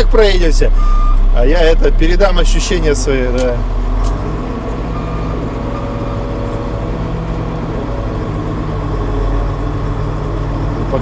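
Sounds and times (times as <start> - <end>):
diesel engine running from cab: 0.0 - 11.0.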